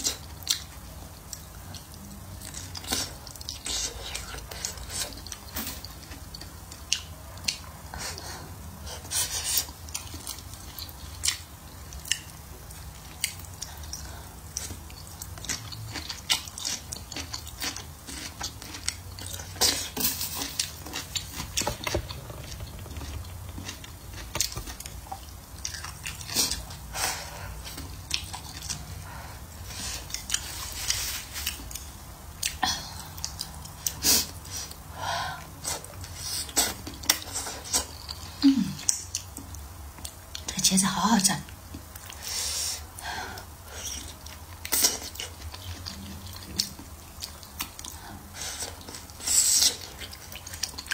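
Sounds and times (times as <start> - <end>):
chewing and biting soft food: 0.0 - 34.9, 43.7 - 50.9.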